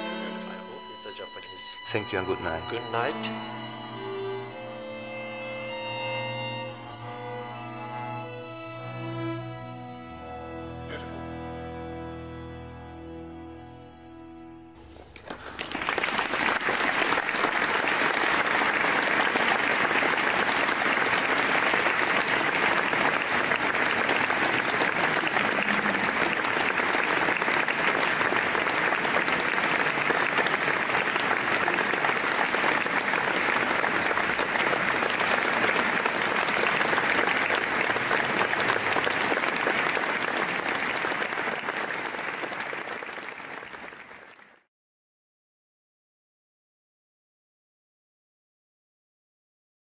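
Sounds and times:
string ensemble playing: 0.0 - 15.4, 17.0 - 43.0
audience applause: 14.8 - 44.7.

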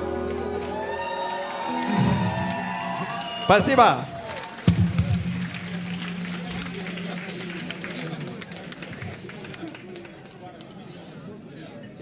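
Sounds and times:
audience clapping: 0.0 - 10.9.

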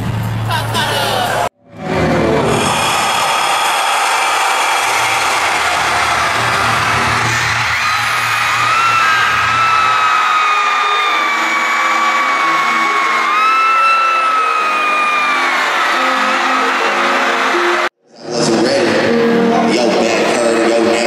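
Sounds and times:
live concert music: 0.0 - 21.0
high tone sliding down: 10.8 - 17.9.

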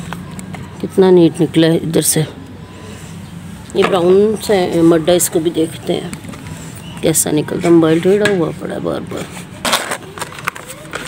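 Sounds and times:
plastic tub scraping gritty ground: 3.8 - 11.0.

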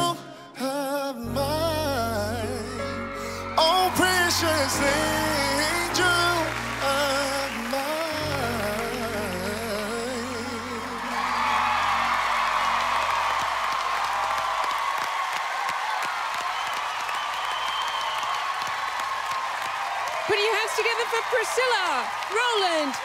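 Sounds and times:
man singing with vibrato: 0.0 - 12.1
band playing: 1.3 - 13.7
audience applause and cheering: 2.8 - 23.0.

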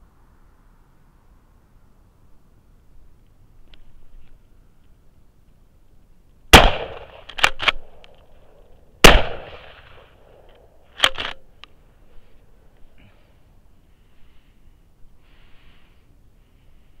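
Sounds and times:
shotgun shots echoing: 6.5 - 8.0, 9.0 - 10.4
shotgun pump action clacks: 6.6 - 8.2, 11.0 - 11.4.

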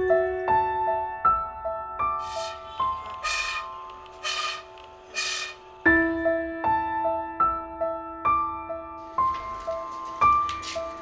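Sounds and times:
soft piano music: 0.0 - 11.0.

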